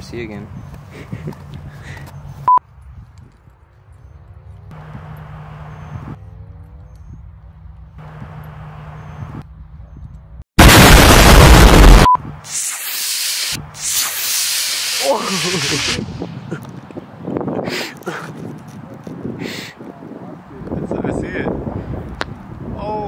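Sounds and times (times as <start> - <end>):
rocket launch blast: 10.6 - 16.2
rocket motor hissing rush: 10.6 - 16.3.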